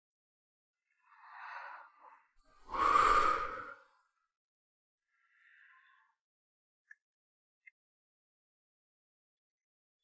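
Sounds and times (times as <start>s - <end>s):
person breathing in: 1.0s - 4.0s.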